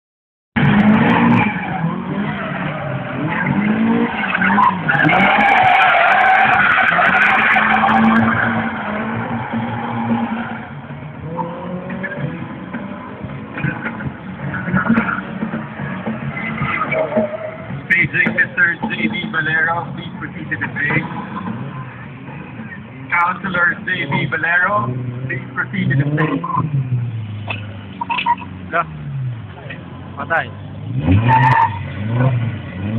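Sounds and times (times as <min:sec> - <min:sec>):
car engine revving: 0:00.6 - 0:32.9
tyres squealing: 0:01.3 - 0:12.4, 0:31.0 - 0:32.3.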